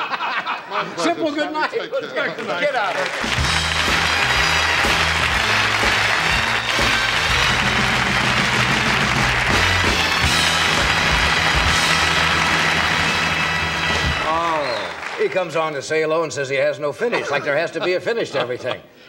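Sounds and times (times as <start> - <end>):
audience applause: 2.2 - 16.1
big band playing: 3.0 - 15.2
man talking: 14.2 - 18.9.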